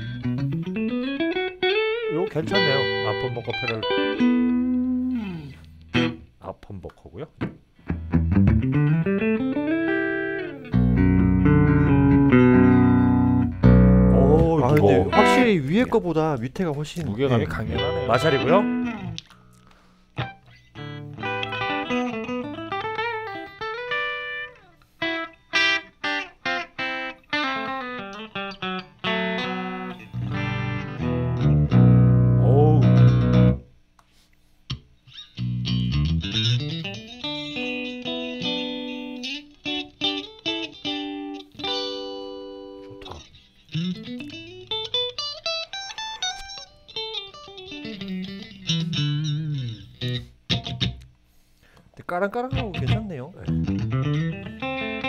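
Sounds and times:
low guitar chord ringing: 0:02.4 - 0:06.2, 0:09.1 - 0:15.8, 0:17.4 - 0:19.2.

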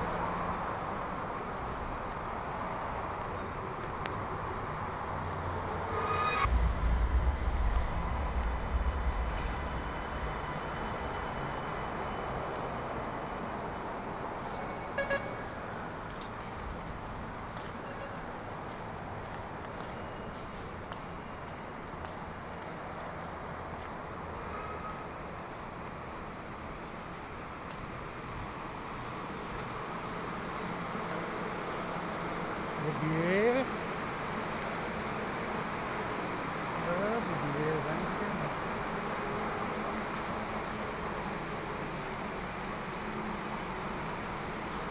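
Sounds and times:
station concourse hum: 0:00.0 - 0:22.2
low rumble: 0:05.2 - 0:12.6.

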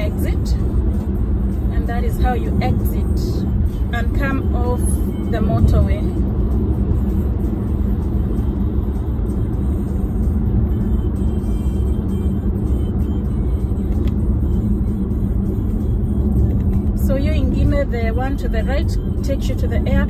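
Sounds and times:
car engine and tyres rumbling: 0:00.0 - 0:20.0
music playing: 0:00.0 - 0:20.0.

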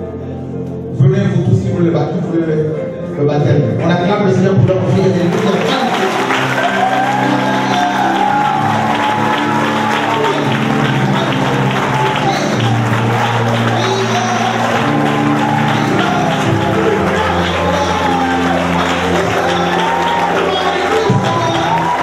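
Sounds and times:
church music: 0:00.0 - 0:22.0
congregation applauding: 0:04.6 - 0:22.0.

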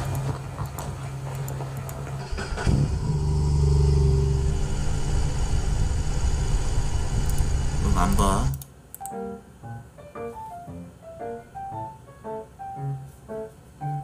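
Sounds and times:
motorcycle engine running: 0:02.1 - 0:07.8.

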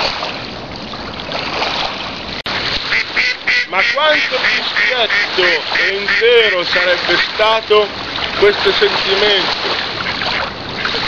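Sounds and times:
water lapping on shore: 0:00.0 - 0:11.0
ducks quacking: 0:02.8 - 0:07.8.

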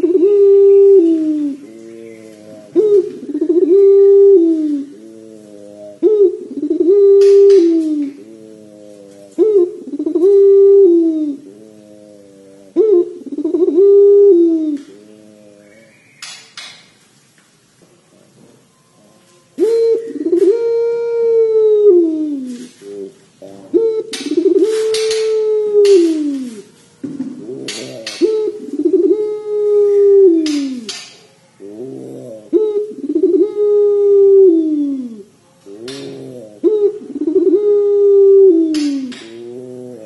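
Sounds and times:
dove cooing: 0:00.0 - 0:16.7, 0:18.1 - 0:40.0.

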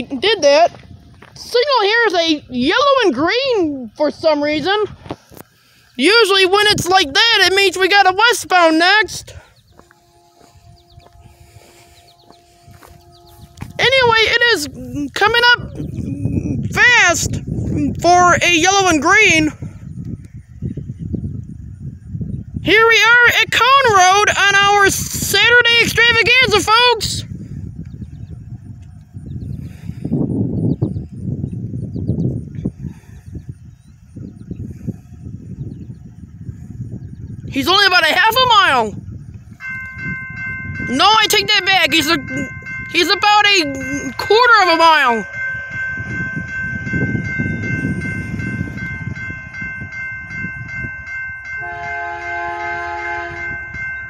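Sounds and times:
low wind rumble: 0:00.0 - 0:54.0
railroad crossing bell ringing: 0:06.0 - 0:15.7, 0:22.7 - 0:27.2, 0:37.6 - 0:54.0.

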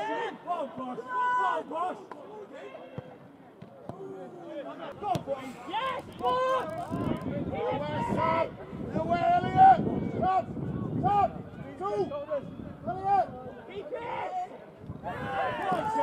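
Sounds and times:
open-air crowd noise: 0:00.0 - 0:16.0.

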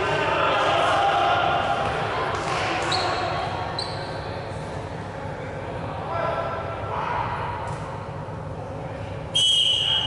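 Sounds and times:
low hum of sports hall: 0:00.0 - 0:10.0.

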